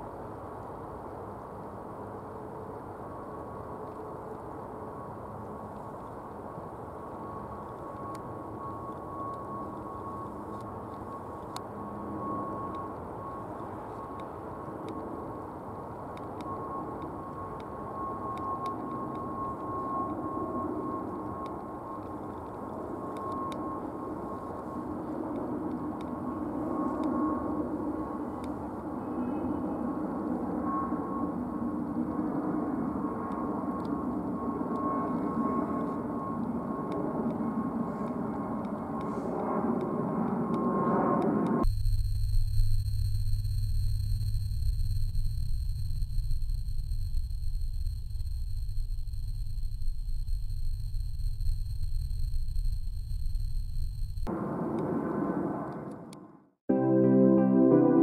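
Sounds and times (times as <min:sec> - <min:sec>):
jet airliner rumble and whine: 0:00.0 - 0:56.3
steady electronic tones: 0:41.6 - 0:54.3.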